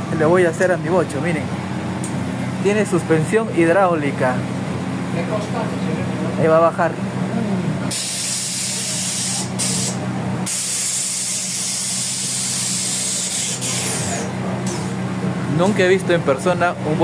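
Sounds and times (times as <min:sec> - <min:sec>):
steady low hum: 0:00.0 - 0:17.0
air suspension venting hiss: 0:07.9 - 0:14.9.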